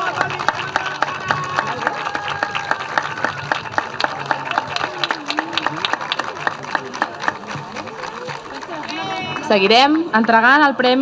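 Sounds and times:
audience clapping: 0.0s - 10.7s
voices talking in crowd: 0.0s - 11.0s.

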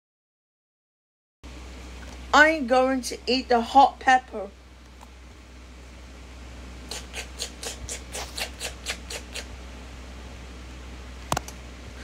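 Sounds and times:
crunchy chewing of pepper: 6.9s - 9.5s.

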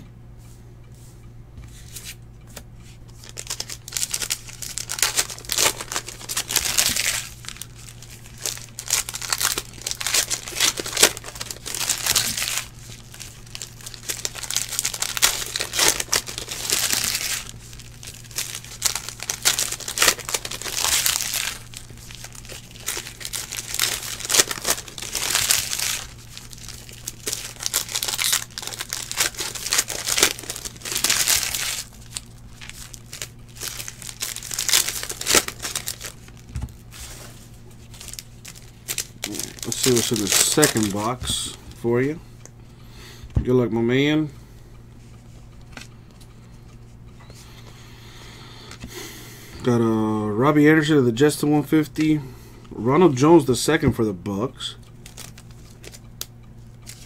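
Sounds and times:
foil wrappers crinkling and tearing: 3.1s - 41.8s, 54.8s - 57.0s.

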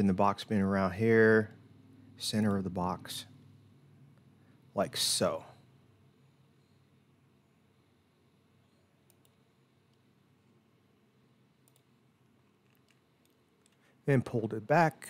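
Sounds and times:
faint computer mouse clicks: 9.0s - 10.0s, 11.6s - 11.9s.

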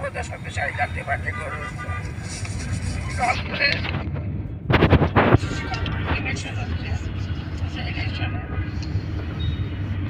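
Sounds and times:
voices talking: 0.0s - 4.1s, 5.0s - 9.8s
steady low rumble: 0.0s - 10.0s.

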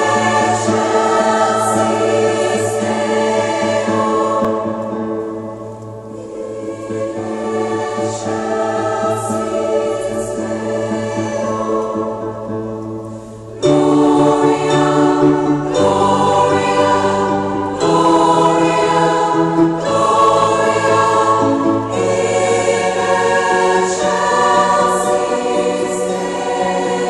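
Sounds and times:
large choir singing: 0.0s - 27.0s.

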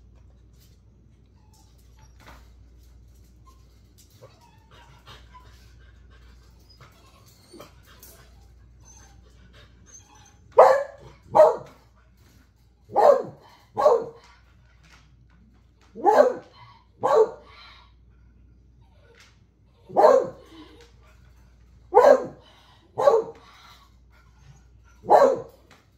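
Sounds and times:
dog barking: 10.6s - 11.8s, 12.9s - 14.2s, 16.0s - 17.6s, 19.9s - 20.7s, 21.9s - 22.4s, 23.0s - 23.5s, 25.0s - 25.6s.

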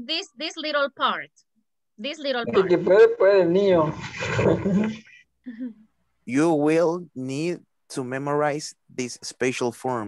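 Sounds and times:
person laughing: 4.2s - 5.1s.

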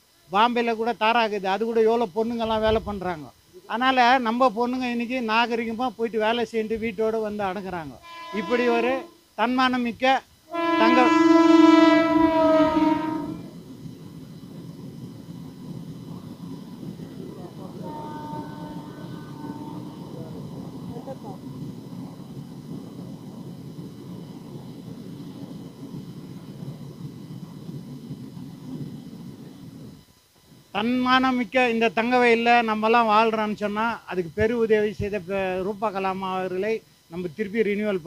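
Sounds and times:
train horn blast: 8.0s - 9.4s, 10.5s - 13.6s, 17.4s - 20.4s
train coaches rumbling past: 10.5s - 30.8s.

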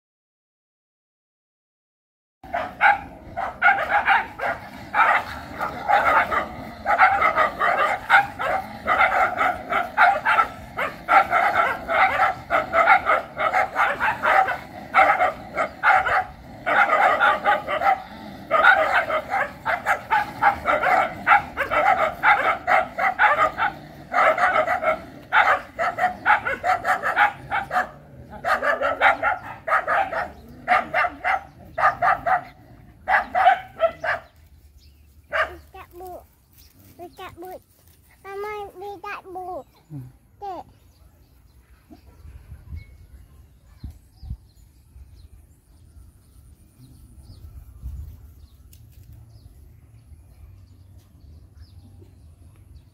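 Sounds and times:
dogs barking: 2.4s - 34.4s, 35.2s - 36.0s.

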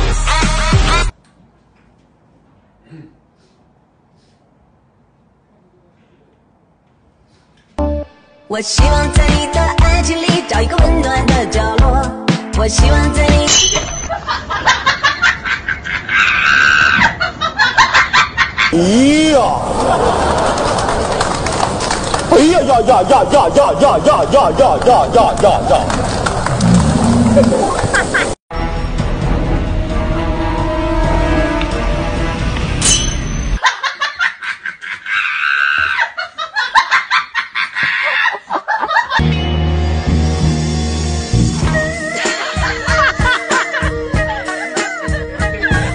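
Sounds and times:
high-pitched laughter: 14.1s - 18.8s, 33.6s - 39.2s, 42.2s - 45.9s
squealing cry: 16.1s - 17.2s, 35.1s - 36.1s.

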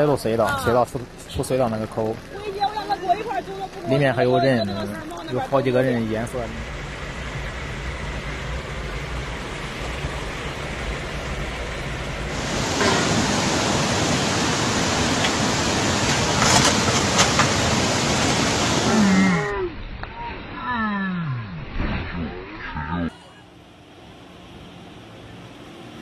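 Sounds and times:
rushing floodwater: 2.1s - 19.6s.

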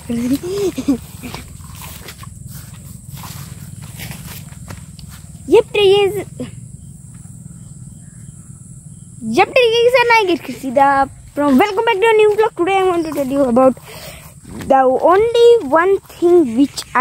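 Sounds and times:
steady low rumble: 0.0s - 17.0s
child's high-pitched vocal calls: 9.2s - 17.0s.

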